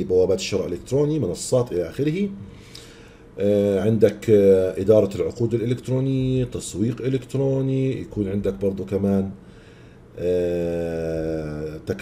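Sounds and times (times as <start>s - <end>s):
man saying uh: 10.2s - 12.0s.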